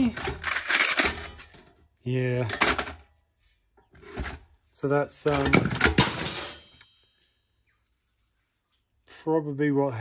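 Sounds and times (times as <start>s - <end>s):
metal parts clanking: 0.0s - 3.1s, 4.0s - 4.5s, 5.1s - 7.2s.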